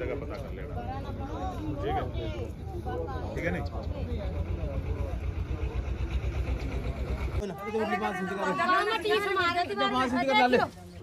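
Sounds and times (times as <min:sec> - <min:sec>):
people talking quietly: 0:00.0 - 0:11.0
vehicle engine idling: 0:03.0 - 0:07.4.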